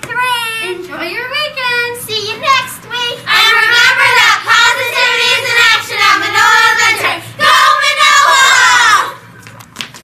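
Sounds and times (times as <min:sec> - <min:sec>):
children singing high notes: 0:03.1 - 0:09.2.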